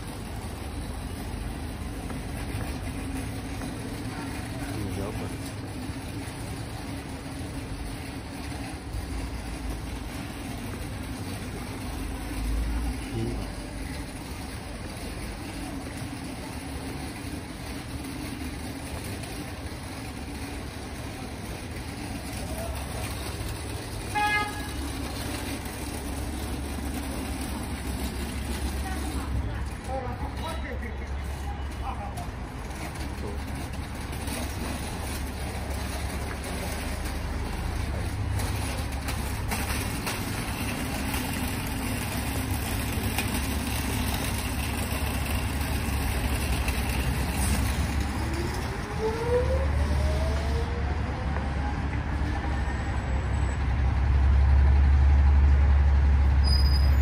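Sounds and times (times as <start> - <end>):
traffic rumble: 0.0 - 57.0
vehicle horn toot: 24.1 - 24.8.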